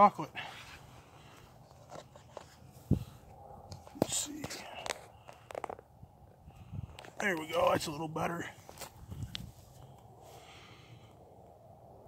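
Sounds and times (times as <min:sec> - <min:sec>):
quiet outdoor background: 0:00.0 - 0:12.0.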